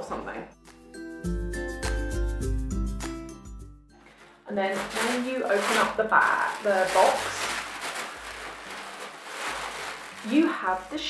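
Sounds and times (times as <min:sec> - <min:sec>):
tissue paper rustling: 0:04.0 - 0:11.0.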